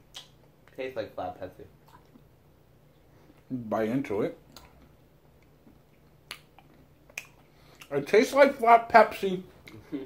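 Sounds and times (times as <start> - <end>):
sharp mouth clicks: 0.0 - 0.8, 4.5 - 7.9.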